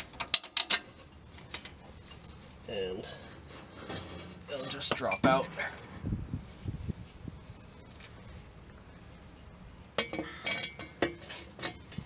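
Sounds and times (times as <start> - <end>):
metal pipe clinking on concrete: 0.2 - 2.2, 10.0 - 12.0.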